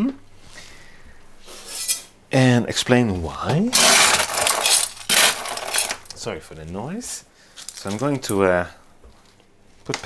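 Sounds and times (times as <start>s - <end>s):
container of pebbles rustling: 3.7s - 6.1s.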